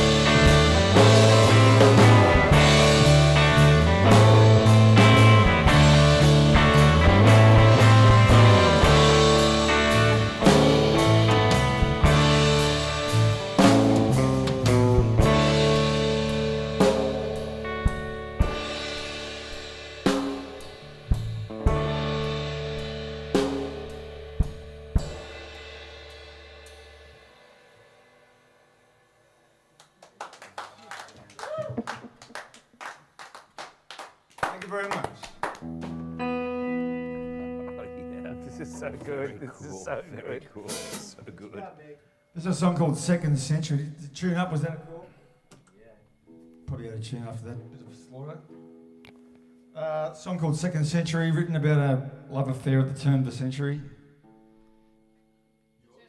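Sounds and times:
live rock band playing: 0.0s - 27.4s, 35.5s - 41.4s
drum kit strikes: 0.0s - 27.5s, 40.6s - 41.4s
guitar strummed: 0.0s - 28.2s, 35.6s - 40.0s, 40.6s - 41.5s.

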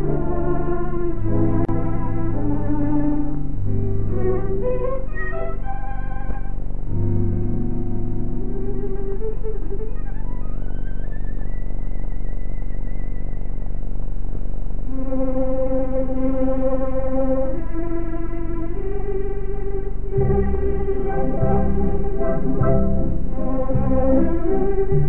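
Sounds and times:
orchestral music: 0.0s - 10.3s, 14.9s - 25.0s
steady low hum: 0.0s - 25.0s.

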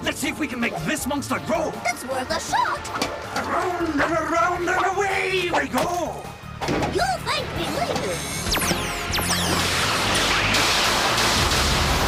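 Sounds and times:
background music: 0.0s - 12.0s
warbling electronic chirps: 8.2s - 10.4s.

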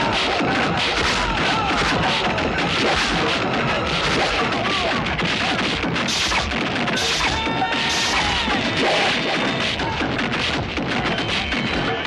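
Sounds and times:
stick fight blows and crashes: 0.0s - 11.6s
background music: 0.0s - 12.0s.

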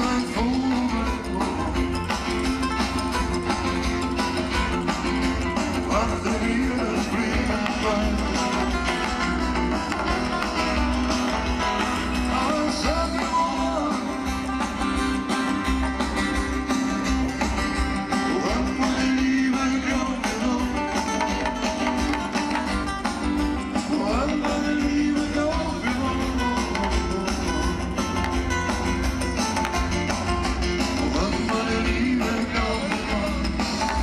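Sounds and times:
live band music: 0.0s - 34.0s.

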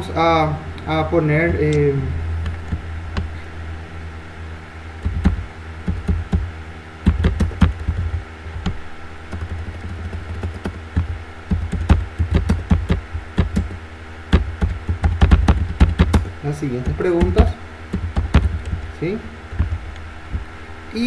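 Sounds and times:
steady low hum: 0.0s - 21.0s
keyboard typing: 5.0s - 19.8s.

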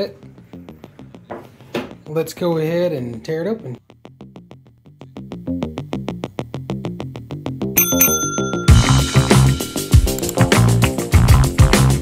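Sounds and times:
bell-like ring: 7.8s - 10.0s.

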